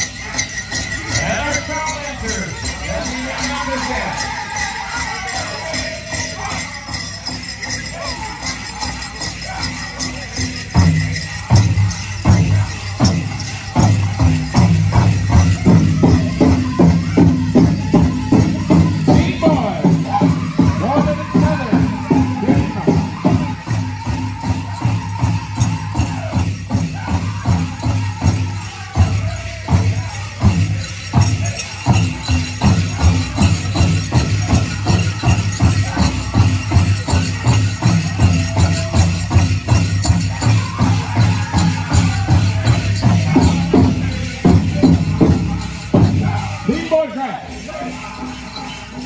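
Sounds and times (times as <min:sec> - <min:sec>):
drum group singing: 0:00.0 - 0:49.0
metal jingling of regalia: 0:00.0 - 0:49.0
big drum beat: 0:10.7 - 0:47.0.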